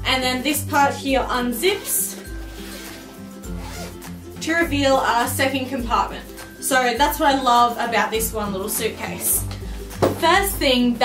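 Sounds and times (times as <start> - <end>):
background music: 0.0 - 11.0
suitcase zipper rasp: 0.9 - 4.2.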